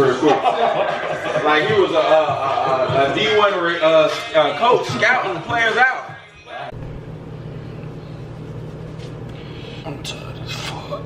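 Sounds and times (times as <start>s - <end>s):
steady low hum: 6.3s - 11.0s.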